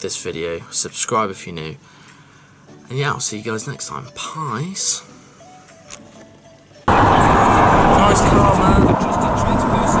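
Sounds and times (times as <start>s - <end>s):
road and engine noise: 5.1s - 10.0s
music in car: 5.3s - 7.1s
voices: 6.9s - 10.0s.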